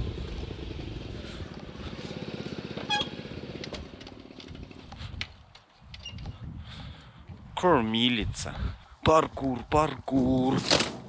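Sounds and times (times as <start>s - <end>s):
small motorbike engine running: 0.0s - 5.2s.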